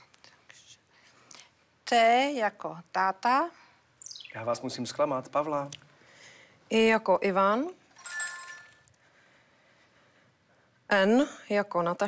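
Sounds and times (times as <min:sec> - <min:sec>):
woman speaking: 0:01.8 - 0:03.6, 0:06.7 - 0:07.8, 0:10.9 - 0:12.0
faint breathy hissing: 0:05.9 - 0:06.6.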